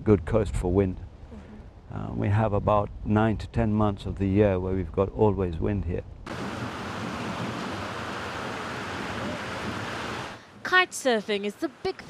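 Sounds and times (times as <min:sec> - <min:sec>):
wind: 0:00.0 - 0:12.0
breaking surf: 0:06.3 - 0:10.5.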